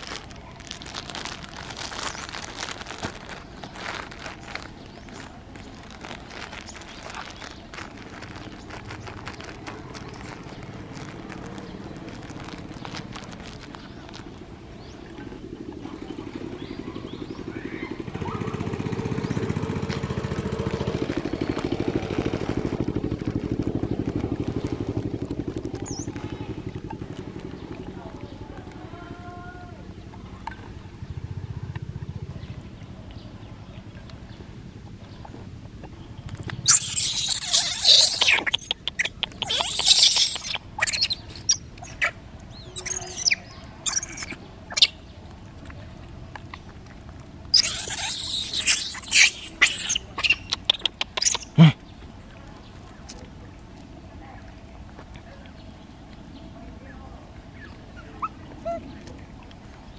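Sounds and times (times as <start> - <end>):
small engine running: 15.4 - 28.0
monkey squeaks and gliding calls: 36.3 - 45.0, 47.5 - 51.8, 57.5 - 59.0
monkeys screaming and squealing: 36.6 - 45.0, 47.5 - 51.8, 57.6 - 59.0.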